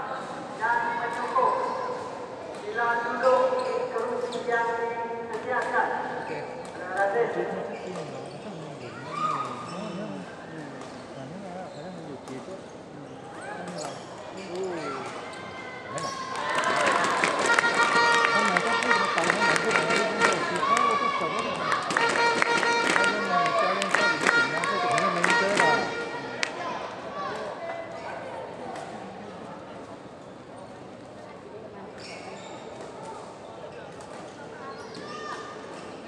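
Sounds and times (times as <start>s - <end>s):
shoes squeaking on court floor: 3.2s - 4.6s, 7.7s - 16.3s, 32.0s - 36.0s
voices calling out: 7.8s - 27.5s.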